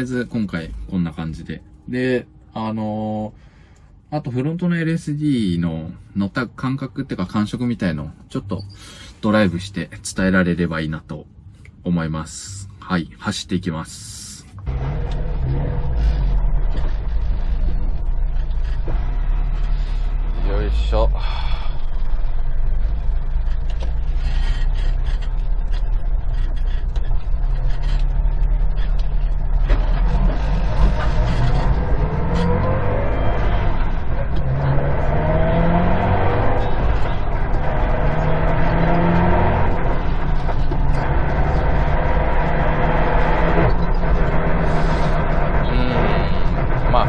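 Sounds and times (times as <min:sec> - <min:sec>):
car engine accelerating from inside cabin: 0:14.6 - 0:47.0.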